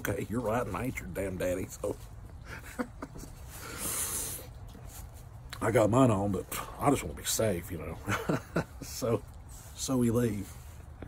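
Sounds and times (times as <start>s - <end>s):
man laughing quietly: 2.2s - 4.0s, 7.9s - 9.3s
hissing breath out: 3.4s - 4.7s.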